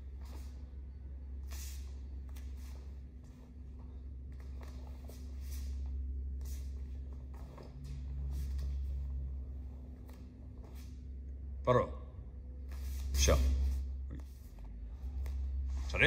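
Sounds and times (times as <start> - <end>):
bare feet scuffing on foam mats: 0.0 - 0.7, 1.4 - 11.0
low hum of hall: 0.0 - 16.0.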